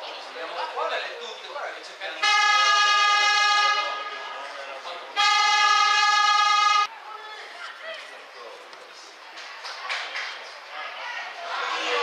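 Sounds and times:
horn blasts: 2.2 - 4.4, 5.1 - 6.9.

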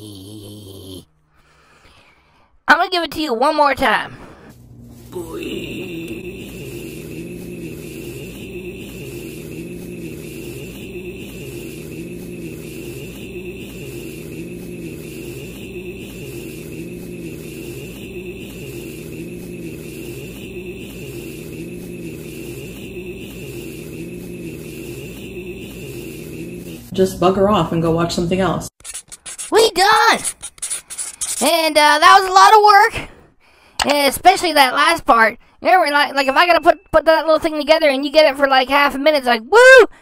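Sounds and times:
high whine: 4.5 - 27.0
looped drone: 4.8 - 27.0.

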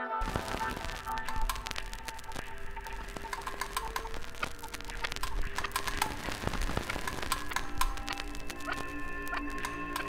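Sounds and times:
electroacoustic music with clicks: 0.0 - 10.0.

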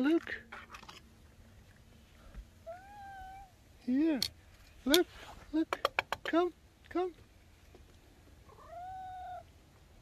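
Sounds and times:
cat meowing: 2.6 - 3.6, 8.5 - 9.5.

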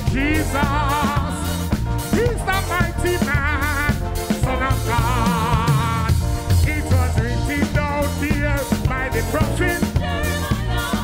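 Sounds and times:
bass: 0.0 - 11.0
drum kit: 0.0 - 11.0.

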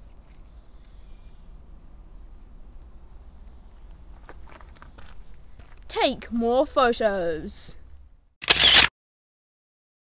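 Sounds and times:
camera shutter burst: 8.4 - 8.9.

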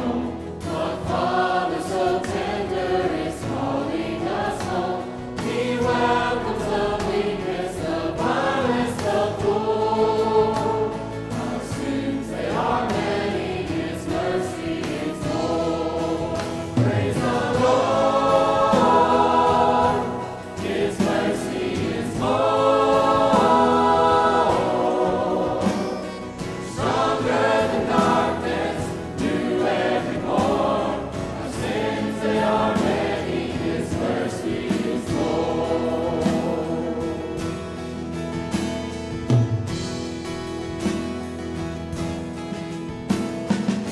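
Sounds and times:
choir singing gospel song: 0.0 - 41.4
instrumental accompaniment: 0.0 - 43.9.

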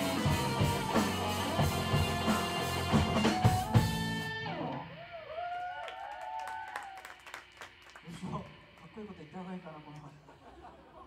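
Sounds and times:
audience whooping: 4.7 - 8.2
people clapping: 5.3 - 8.9.

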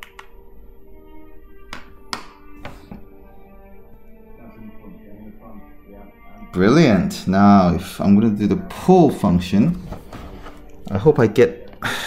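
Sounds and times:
music from television: 0.0 - 12.0.

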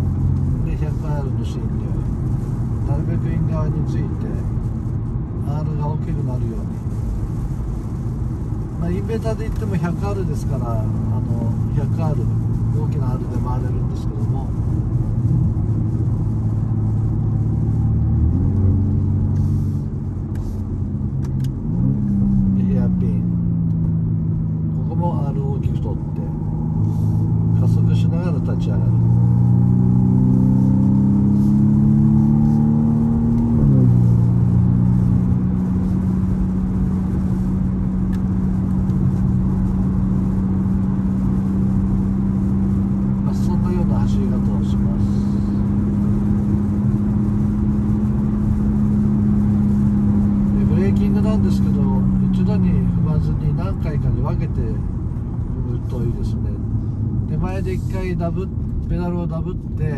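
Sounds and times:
car engine from inside car: 0.0 - 59.9.

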